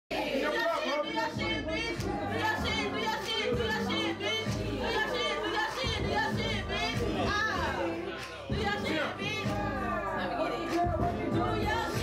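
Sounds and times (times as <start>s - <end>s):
rapping over a beat: 0.1s - 12.0s
deep bass notes: 5.9s - 12.0s.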